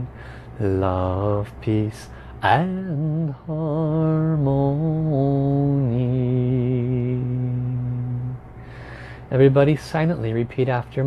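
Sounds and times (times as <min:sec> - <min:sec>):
man singing a slow chant: 0:00.0 - 0:08.4.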